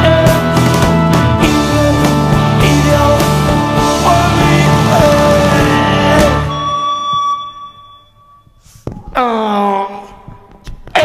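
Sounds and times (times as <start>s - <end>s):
rock band music: 0.0s - 7.7s.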